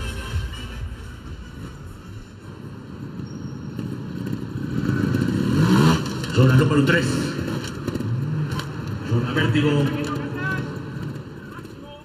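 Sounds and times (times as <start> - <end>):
motorcycle engine revving: 1.5 - 12.0.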